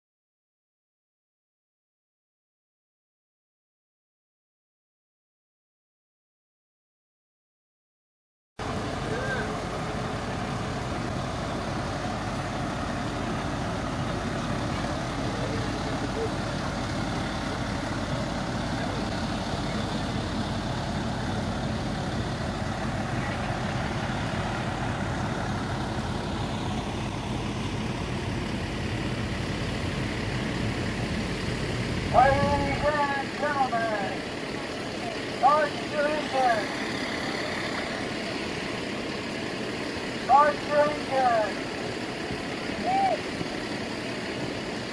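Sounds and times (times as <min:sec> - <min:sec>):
diesel engine idling: 0:08.6 - 0:44.9
faint voices: 0:08.7 - 0:10.8, 0:11.6 - 0:26.8, 0:32.1 - 0:38.9.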